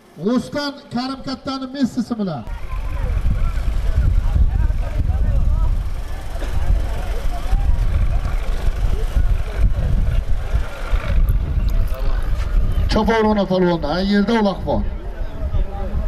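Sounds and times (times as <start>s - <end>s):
heavy low rumble: 2.5s - 14.0s.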